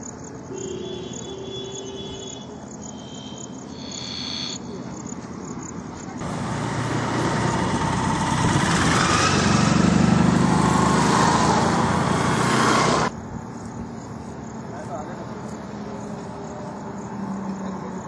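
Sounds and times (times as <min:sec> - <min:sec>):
van passing: 0:05.6 - 0:13.2
motorcycle passing: 0:06.1 - 0:13.2.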